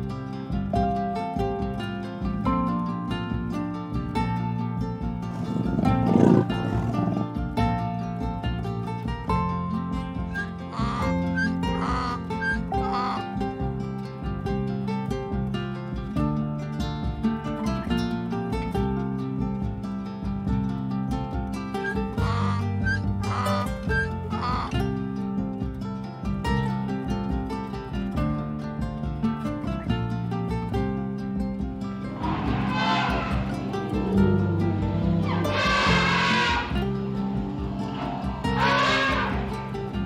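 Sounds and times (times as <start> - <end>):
plucked-string background music: 0.0 - 40.0
strummed acoustic guitar: 0.0 - 40.0
leopard growl: 5.1 - 8.0, 32.0 - 40.0
short animal calls: 10.4 - 13.2, 21.8 - 24.7, 32.1 - 39.9.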